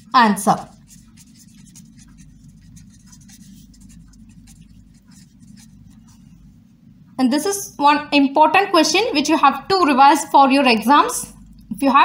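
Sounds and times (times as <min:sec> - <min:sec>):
pen scratching on paper: 0:00.0 - 0:06.4.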